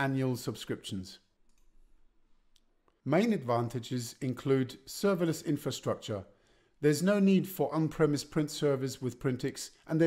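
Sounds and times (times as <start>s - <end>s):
narrator speaking: 0.0s - 1.3s, 3.0s - 10.0s.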